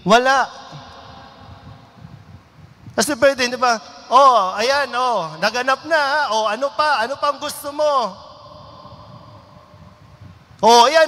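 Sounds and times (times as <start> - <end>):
low rumble and hiss: 0.0 - 11.0.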